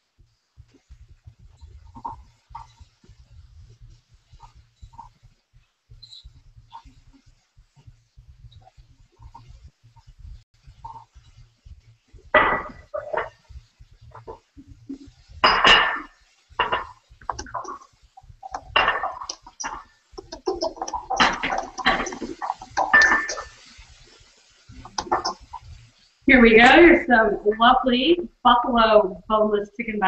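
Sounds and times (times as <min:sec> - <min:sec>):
spatula scraping glass bowl: 0:18.5 - 0:23.8.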